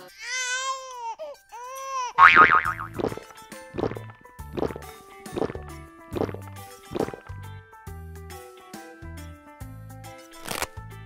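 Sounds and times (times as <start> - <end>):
children's music with a beat: 0.6 - 11.0.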